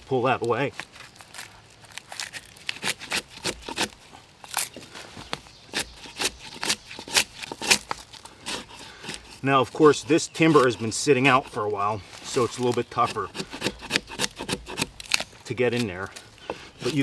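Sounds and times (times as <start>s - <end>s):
bark scraping and cracking: 0.7s - 17.0s.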